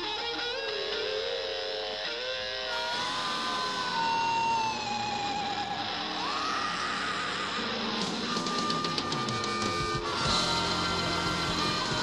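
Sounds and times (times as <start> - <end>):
electric guitar sustained notes: 0.0 - 12.0
live rock band: 0.0 - 12.0.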